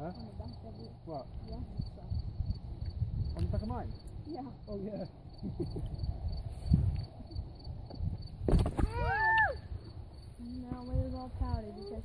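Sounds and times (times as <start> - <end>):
cricket chirping: 0.0 - 12.0
wind buffeting microphone: 1.3 - 4.6, 5.6 - 12.0.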